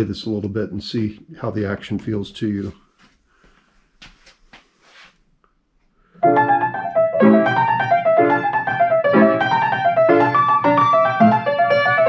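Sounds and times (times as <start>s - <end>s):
piano playing chords: 6.2s - 12.0s.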